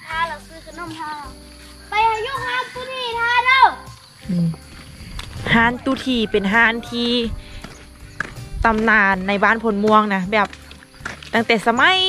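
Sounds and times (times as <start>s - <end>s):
low vocal sound: 4.3s - 5.1s
woman speaking: 5.5s - 7.4s, 8.7s - 10.5s, 11.4s - 12.0s.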